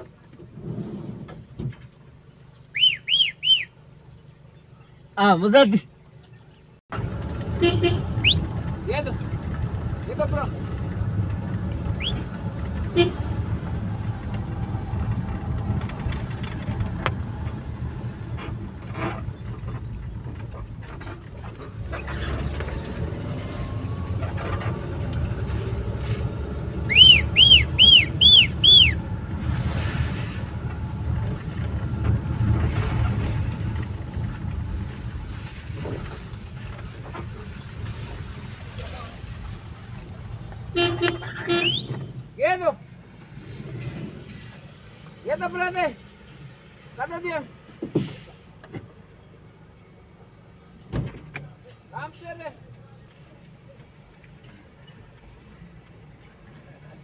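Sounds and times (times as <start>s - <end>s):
engine and tyre rumble: 0.0s - 57.0s
short high horn toots: 40.7s - 42.1s.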